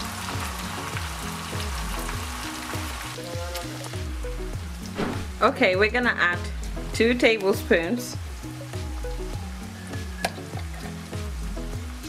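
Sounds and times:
background music: 0:00.0 - 0:12.0
onion sizzling in oil: 0:00.0 - 0:12.0.

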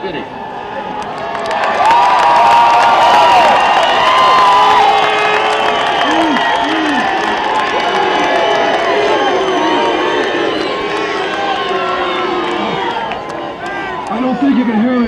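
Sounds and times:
crowd cheering and shouting: 0:00.0 - 0:15.0.

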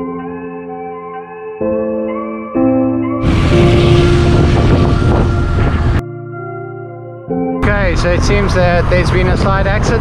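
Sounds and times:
traffic engines and tyres: 0:03.2 - 0:06.0, 0:07.6 - 0:10.0
wind buffeting microphone: 0:03.2 - 0:06.0, 0:07.6 - 0:10.0
steady drone: 0:03.2 - 0:06.2.

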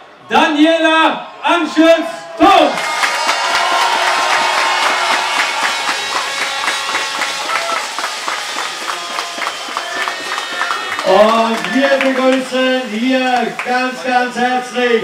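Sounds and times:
crowd applauding: 0:02.5 - 0:15.0.

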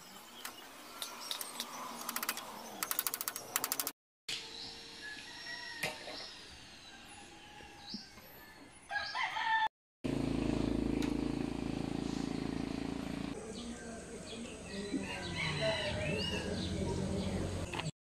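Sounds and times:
small birds chirping: 0:00.0 - 0:03.8, 0:13.4 - 0:17.9
rooster crowing: 0:07.0 - 0:09.7, 0:14.9 - 0:16.7.

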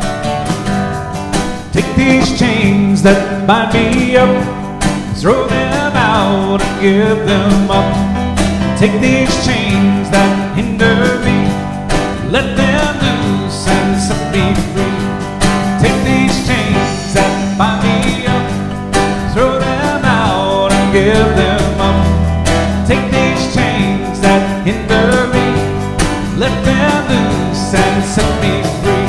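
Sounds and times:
electric guitar: 0:00.0 - 0:29.0
shaker keeping time: 0:00.0 - 0:29.0
steady bass: 0:00.0 - 0:29.0
strummed acoustic guitar: 0:00.0 - 0:29.0.

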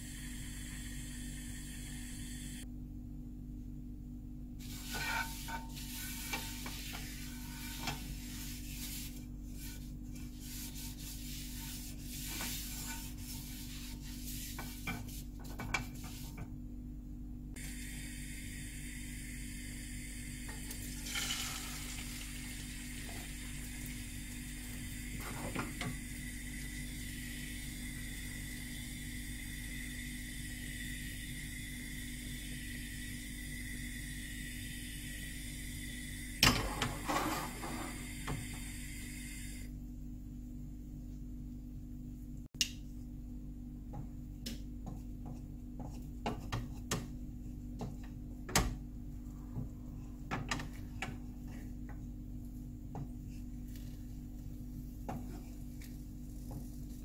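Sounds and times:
paper towel rubbing frying pan: 0:04.6 - 0:16.5
egg sizzling in a pan: 0:17.6 - 0:36.6.

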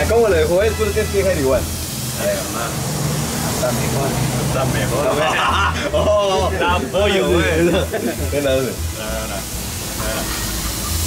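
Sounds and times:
meat sizzling on a grill: 0:00.0 - 0:11.0.

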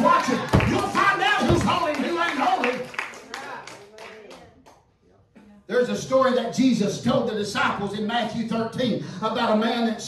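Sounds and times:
people clapping: 0:00.0 - 0:04.8.

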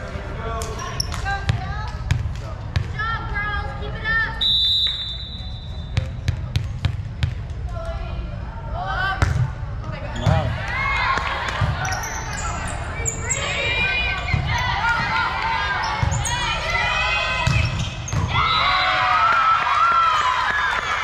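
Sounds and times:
referee's whistle: 0:04.4 - 0:06.0, 0:17.6 - 0:18.9
players' voices: 0:07.5 - 0:19.0
sneakers squeaking on floor: 0:10.1 - 0:10.5, 0:11.7 - 0:14.7, 0:15.8 - 0:16.6, 0:17.4 - 0:18.5.

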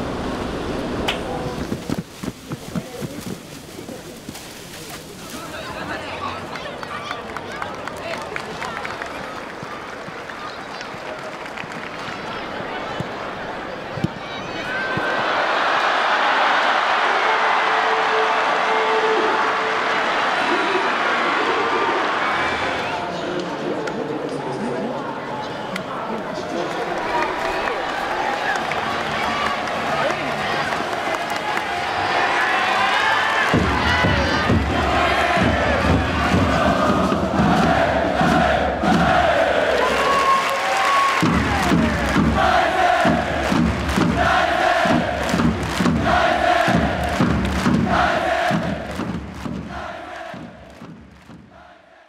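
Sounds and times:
crowd chanting and singing: 0:12.3 - 0:40.0, 0:41.1 - 0:52.0
pounding drum beat: 0:33.4 - 0:39.6, 0:41.2 - 0:51.7.

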